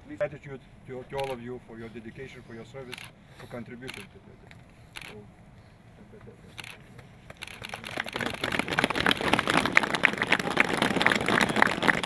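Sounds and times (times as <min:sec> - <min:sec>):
group applauding: 0:07.6 - 0:12.0.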